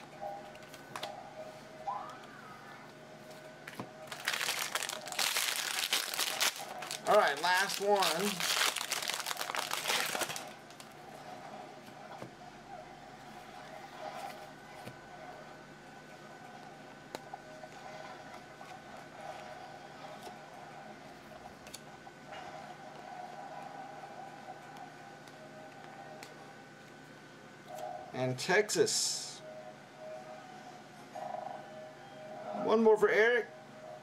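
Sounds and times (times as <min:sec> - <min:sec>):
handling of cards: 0:03.3 - 0:10.9
foil wrapper crinkling: 0:04.1 - 0:10.9.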